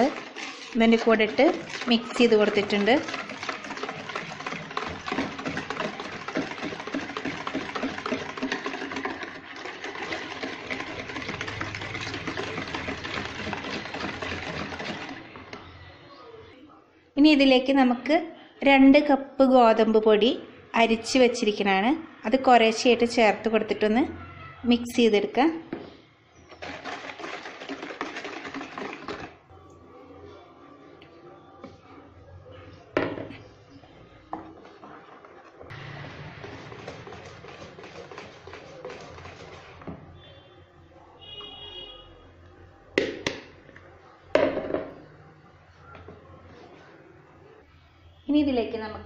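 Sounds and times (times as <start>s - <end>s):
whisk clattering in a plastic bowl: 0.0s - 15.6s, 26.5s - 29.4s, 36.4s - 40.0s.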